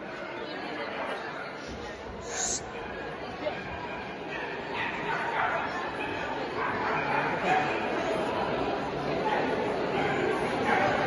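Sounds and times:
crowd chatter: 0:00.0 - 0:11.0
dog barking: 0:04.3 - 0:07.6.

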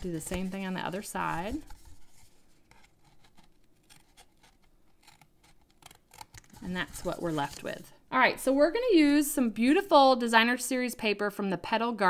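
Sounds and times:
scissors snipping cardstock: 0:02.7 - 0:07.8.

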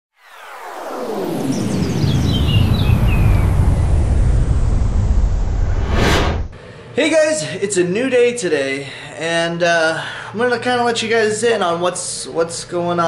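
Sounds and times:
falling tones and shimmering glides: 0:00.2 - 0:06.2
bright rushing sweep: 0:00.2 - 0:06.6
deep rumble: 0:01.3 - 0:06.6.

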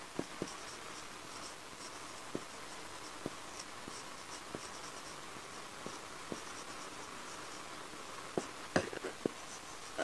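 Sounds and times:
marker squeaking on whiteboard: 0:00.2 - 0:07.8, 0:08.4 - 0:10.0.

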